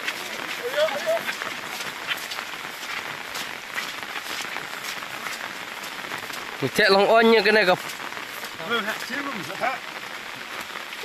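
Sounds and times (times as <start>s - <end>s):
rain falling on pond and grass: 0.0s - 11.0s.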